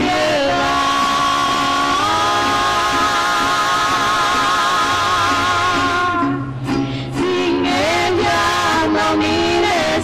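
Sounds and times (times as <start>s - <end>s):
women singing long note: 0.0s - 6.5s, 7.2s - 10.0s.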